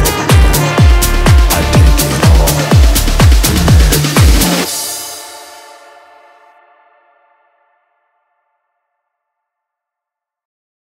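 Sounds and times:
sustained synth chord: 0.0 - 9.2.

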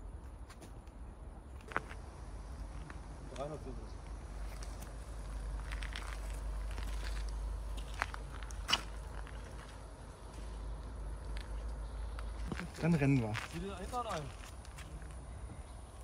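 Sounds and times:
steady low rumble: 0.0 - 16.0
footsteps on forest floor: 4.4 - 10.7, 12.2 - 15.2
twigs snapping: 5.6 - 9.6
man speaking: 12.5 - 14.4.

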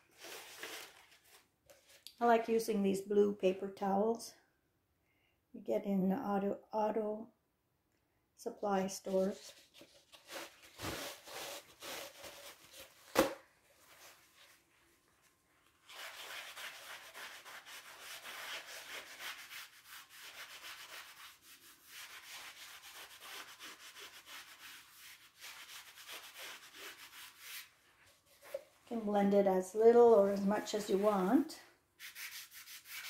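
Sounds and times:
paper towel rubbing on canvas: 15.8 - 28.6, 32.0 - 33.0.

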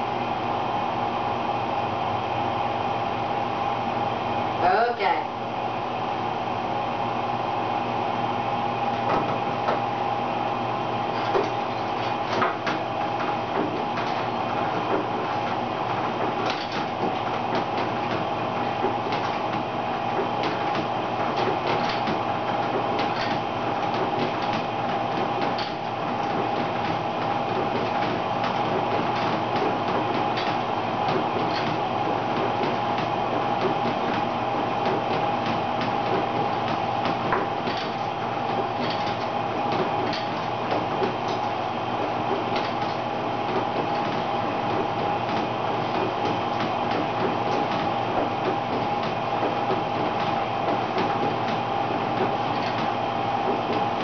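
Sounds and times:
elliptical trainer whirring: 0.0 - 54.0
handles and pedals knocking: 8.8 - 9.9, 11.0 - 54.0.

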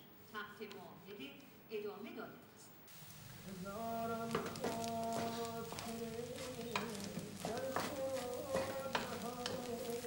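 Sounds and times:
food sizzling faintly: 2.9 - 10.0
spoon knocking against pot: 6.8 - 9.7.

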